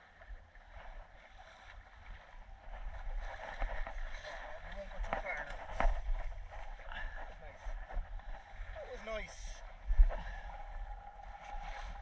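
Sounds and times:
water washing along hull: 0.0s - 12.0s
wind rumbling on microphone: 0.0s - 12.0s.

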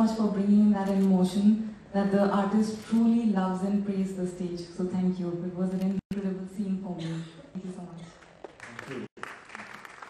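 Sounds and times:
voice: 0.0s - 8.1s
audience applauding: 8.4s - 10.0s.

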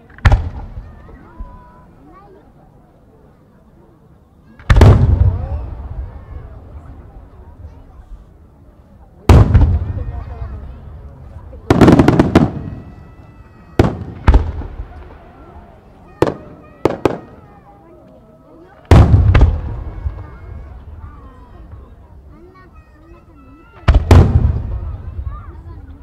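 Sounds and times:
firework shells booming: 0.1s - 0.8s, 4.6s - 6.2s, 9.3s - 10.4s, 11.6s - 13.1s, 13.8s - 15.3s, 18.8s - 21.0s, 23.8s - 25.3s.

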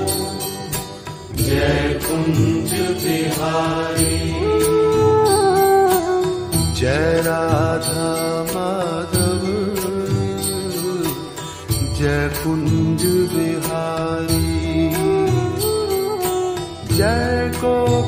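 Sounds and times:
steady percussion beat: 0.0s - 18.0s.

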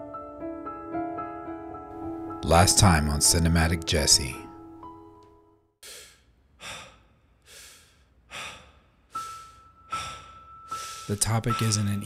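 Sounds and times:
person breathing heavily: 5.8s - 11.2s.

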